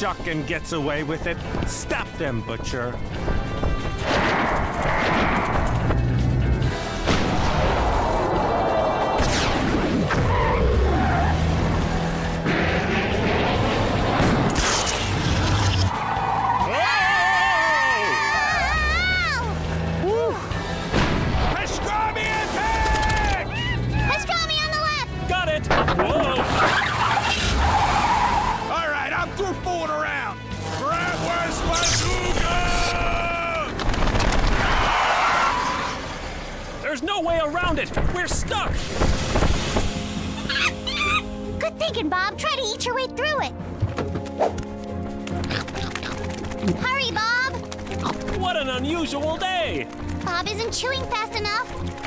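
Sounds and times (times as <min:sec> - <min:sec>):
background music: 0:00.0 - 0:35.8, 0:36.8 - 0:52.0.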